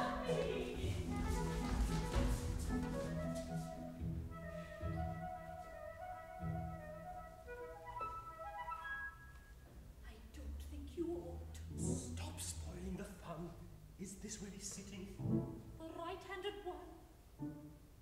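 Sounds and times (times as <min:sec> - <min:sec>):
woodwind lines: 0:00.0 - 0:09.5.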